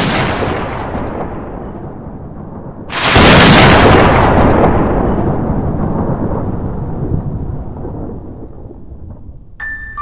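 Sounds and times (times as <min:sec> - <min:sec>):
rolling thunder: 0:00.0 - 0:09.6.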